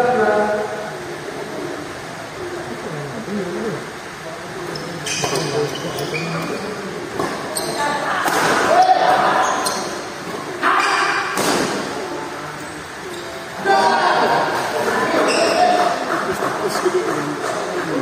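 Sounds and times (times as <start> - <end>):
voices in background: 0.0 - 18.0.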